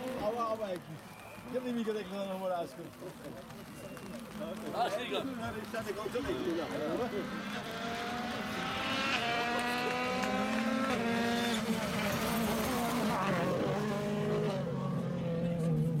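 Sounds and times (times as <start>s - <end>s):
rally car engine at full throttle: 5.4s - 16.0s.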